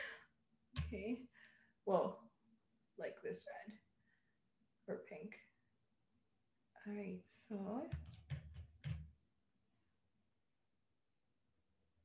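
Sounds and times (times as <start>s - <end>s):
soft knocks and handling bumps: 7.9s - 9.1s.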